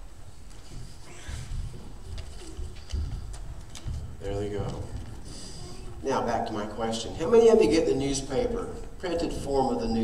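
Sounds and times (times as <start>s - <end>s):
people shuffling about: 0.0s - 10.0s.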